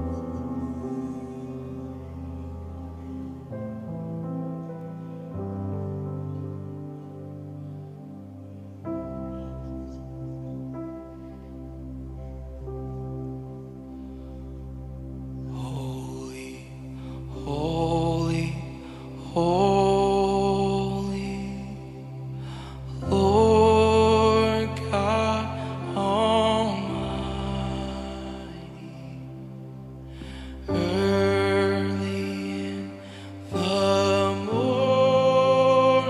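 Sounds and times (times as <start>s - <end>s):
keyboard pad: 0.0s - 36.0s
person singing long notes: 15.4s - 36.0s.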